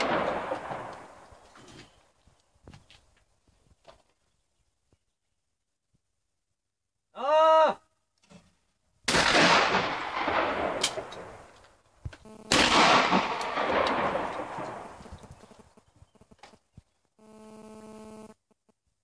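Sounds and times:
shotgun shots: 0:00.0 - 0:01.2, 0:09.1 - 0:11.5, 0:12.5 - 0:15.6
person shouting a call: 0:07.2 - 0:07.9.

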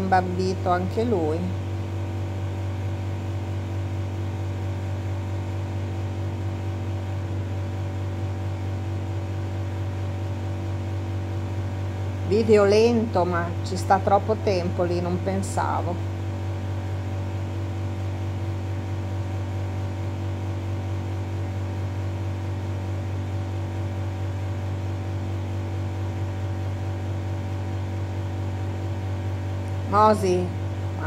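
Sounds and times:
air conditioner humming: 0:00.0 - 0:31.0.

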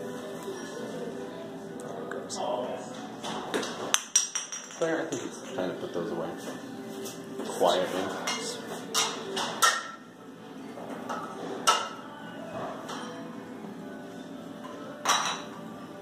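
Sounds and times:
kitchenware clinking and knocking: 0:03.6 - 0:05.7, 0:15.0 - 0:15.6.

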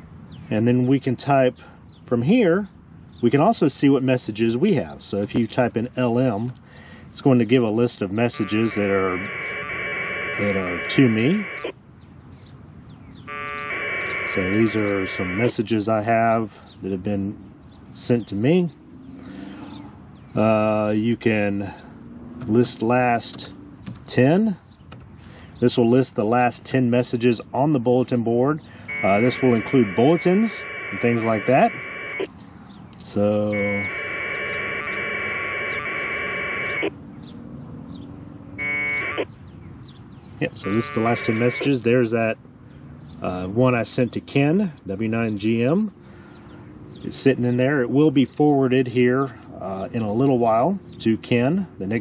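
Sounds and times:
buzzy two-tone data warble: 0:08.3 - 0:11.7, 0:28.9 - 0:32.3.

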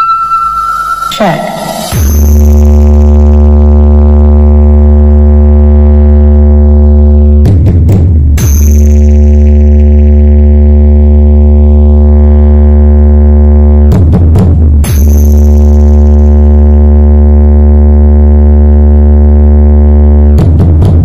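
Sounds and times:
loud deep bass drone: 0:00.0 - 0:21.0.

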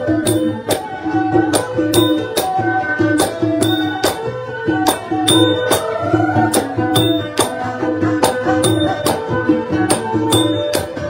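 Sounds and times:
instrumental melody: 0:00.0 - 0:11.0
sharp percussive strikes: 0:00.0 - 0:11.0.

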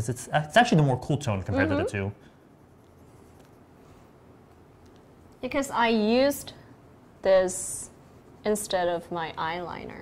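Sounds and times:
wooden stick rubbing on skin: 0:02.5 - 0:04.2, 0:07.2 - 0:09.4.

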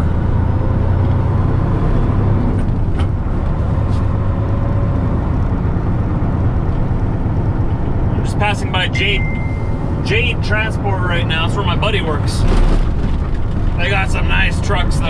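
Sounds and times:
diesel truck engine pulling away: 0:00.0 - 0:15.0.

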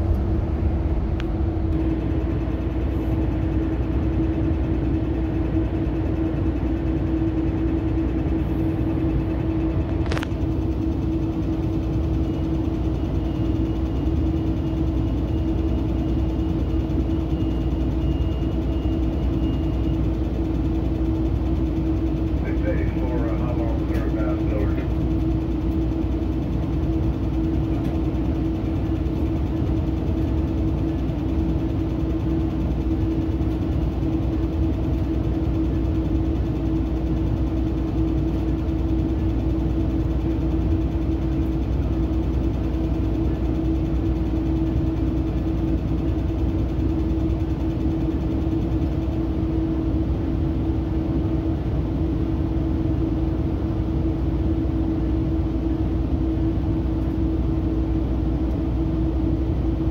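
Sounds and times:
train coach hum and rumble: 0:00.0 - 0:59.9
muffled voice: 0:22.4 - 0:24.9.

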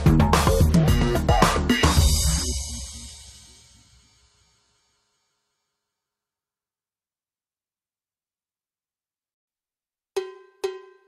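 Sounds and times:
electronic cowbell strikes: 0:10.2 - 0:11.0.

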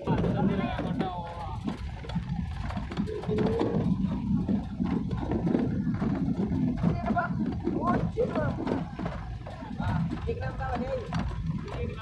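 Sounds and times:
wheels knocking: 0:00.0 - 0:12.0.

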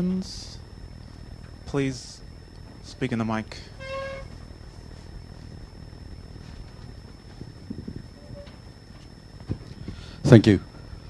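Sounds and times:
faint high-pitched whine: 0:00.0 - 0:11.0
brief held tone: 0:03.5 - 0:04.5, 0:08.0 - 0:08.7.

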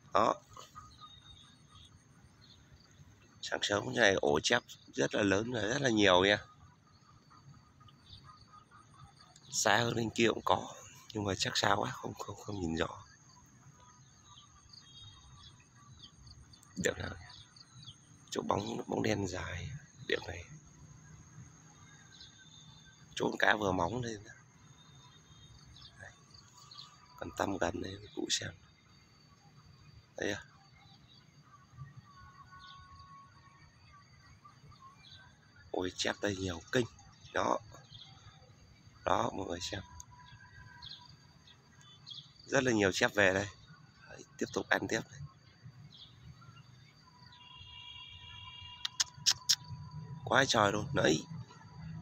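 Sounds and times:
faint outdoor ambience: 0:00.0 - 0:52.0
soft high bird chirps: 0:00.0 - 0:52.0.

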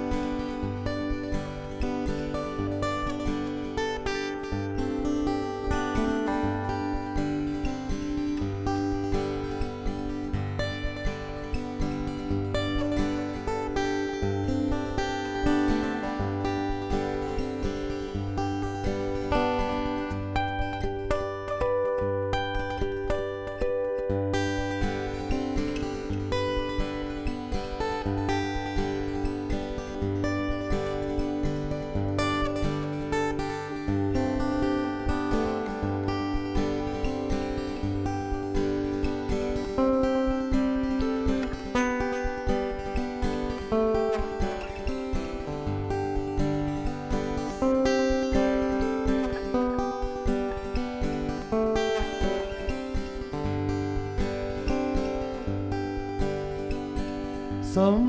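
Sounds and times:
fingerpicked acoustic guitar: 0:00.0 - 0:58.0.

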